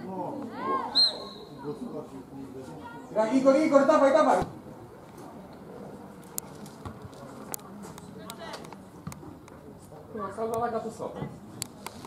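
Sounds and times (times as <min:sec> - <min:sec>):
players calling and shouting: 0:00.0 - 0:05.0.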